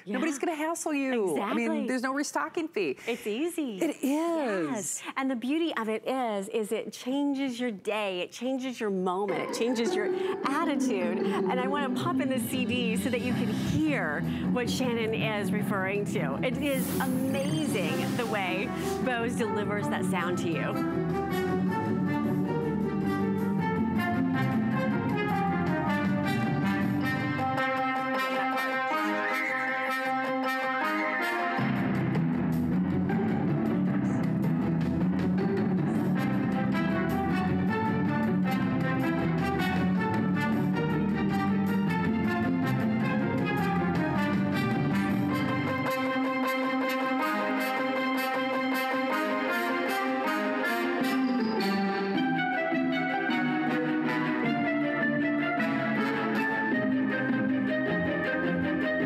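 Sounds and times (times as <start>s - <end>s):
instrumental music: 9.3s - 59.0s.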